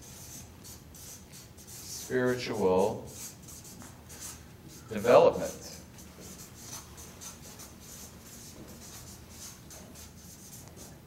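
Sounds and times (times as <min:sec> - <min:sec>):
marker writing on flip chart: 0:00.0 - 0:02.1, 0:03.1 - 0:11.0
low room hum: 0:00.0 - 0:11.0.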